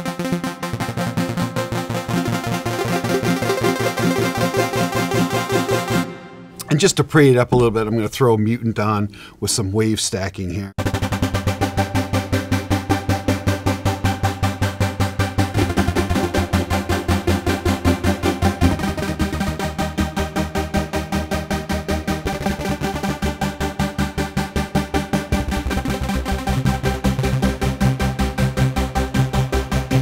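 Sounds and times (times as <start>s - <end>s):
pulsing synthesizer chords: 0.0s - 6.7s, 10.8s - 30.0s.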